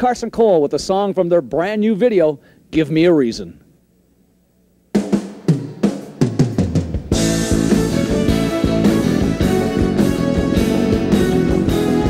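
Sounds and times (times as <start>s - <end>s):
drum fill: 5.0s - 12.0s.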